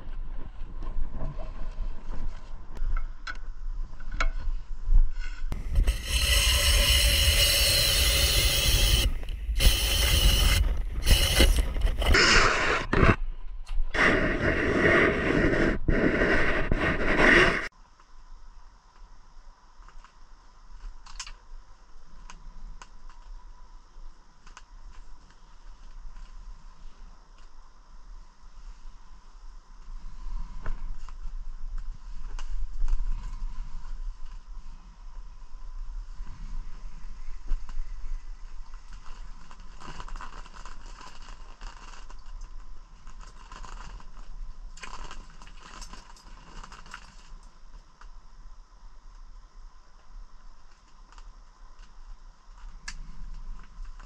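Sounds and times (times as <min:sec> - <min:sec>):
low hum: 0:00.0 - 0:17.7.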